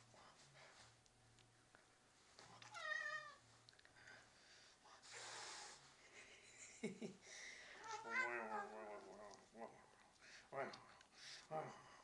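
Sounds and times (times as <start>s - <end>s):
cat meowing: 7.8s - 8.7s.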